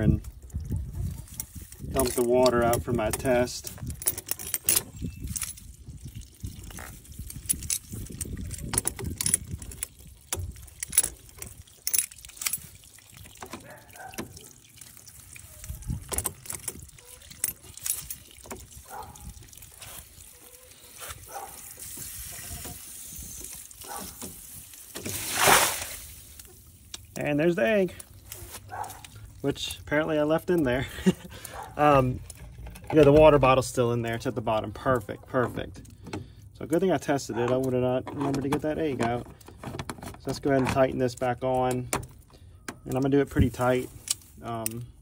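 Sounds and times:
water trickling onto grass: 0.0s - 2.7s, 5.2s - 31.6s
water splashing rush: 24.9s - 26.4s.

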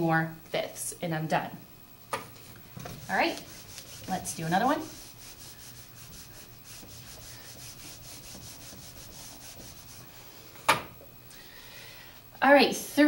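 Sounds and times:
eraser rubbing on whiteboard: 2.9s - 10.3s.

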